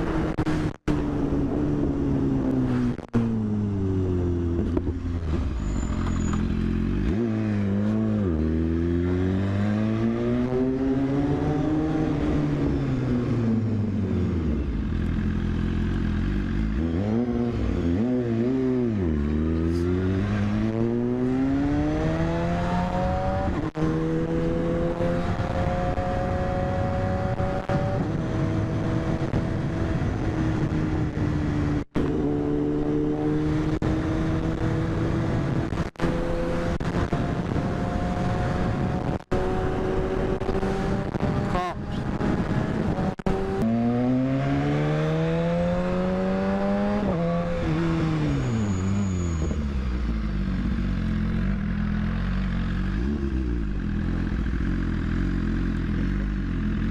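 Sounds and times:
motorcycle engine revving: 0.0 - 56.9.

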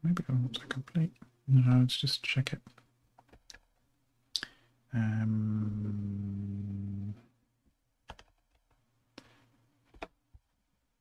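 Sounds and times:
man saying umm: 4.4 - 7.2.

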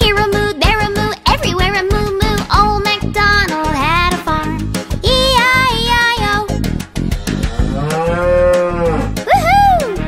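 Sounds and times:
bouncy children's music: 0.0 - 10.0
cartoon cow mooing: 7.4 - 9.4.

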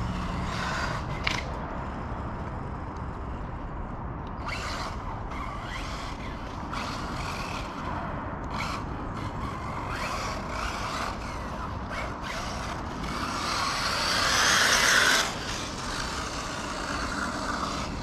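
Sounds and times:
electric toy car drivetrain whine: 0.0 - 3.4, 4.4 - 18.0.

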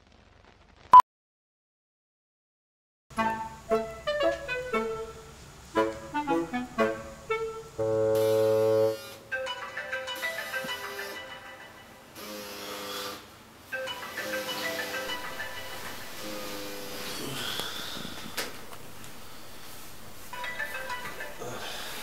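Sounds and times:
loud held tone: 7.3 - 9.1, 13.7 - 21.9
phone ringtone melody: 8.2 - 12.2, 13.7 - 17.0, 20.2 - 22.0.

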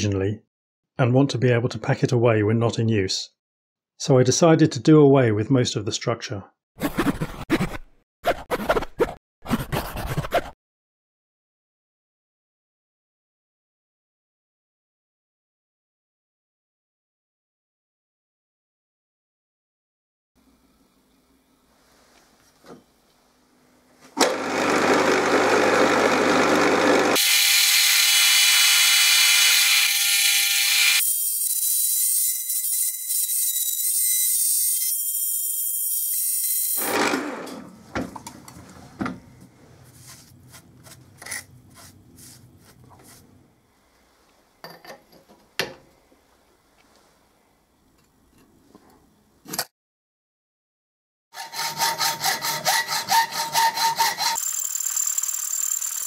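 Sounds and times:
milling machine cutting steel: 24.3 - 31.1
quiet brushing: 38.8 - 44.4
hand saw strokes on metal tube: 51.4 - 54.4.

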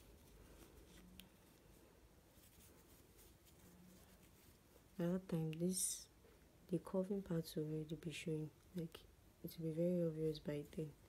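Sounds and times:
soft yarn rustling: 0.0 - 11.0.

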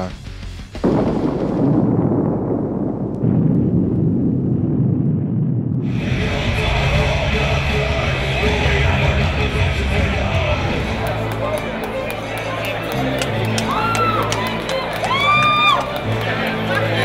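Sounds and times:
music: 0.0 - 1.6, 5.9 - 17.0
explosion with dull rumble: 0.8 - 7.1
crowd noise: 5.9 - 17.0.

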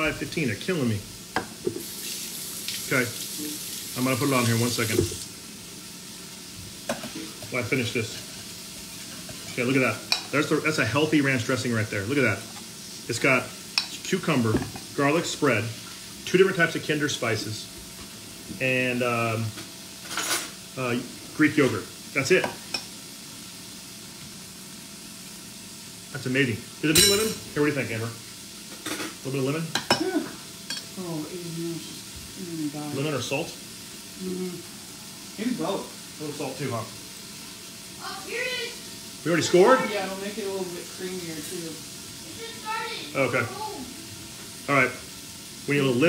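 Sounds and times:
steady hiss: 0.0 - 46.0.

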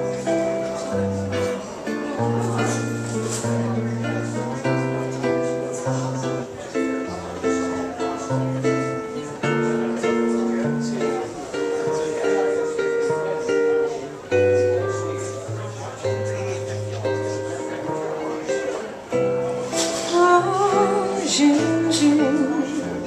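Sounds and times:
jazz guitar chord melody: 0.0 - 23.0.

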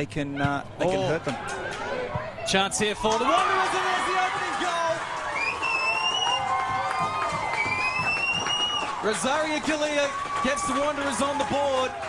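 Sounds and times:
crowd cheering and shouting: 0.8 - 12.0
high whoops rising in pitch: 5.3 - 9.0.

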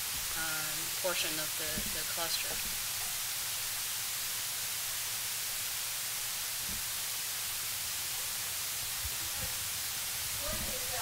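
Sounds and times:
steady background hiss: 0.0 - 11.0
faint low thuds: 1.6 - 3.2.

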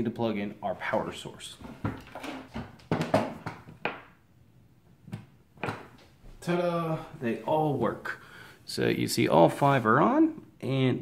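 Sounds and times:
rustles and knocks on table: 1.6 - 4.2, 5.1 - 6.2.

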